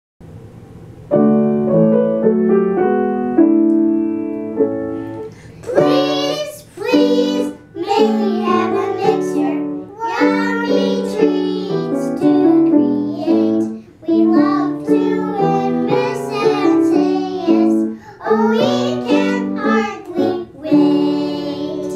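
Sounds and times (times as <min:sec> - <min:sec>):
upright piano chords: 0:00.2 - 0:21.9
young children singing: 0:05.6 - 0:21.9.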